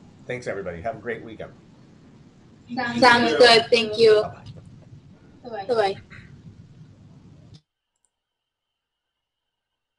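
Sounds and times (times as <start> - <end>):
call audio hiss: 0.0 - 7.6.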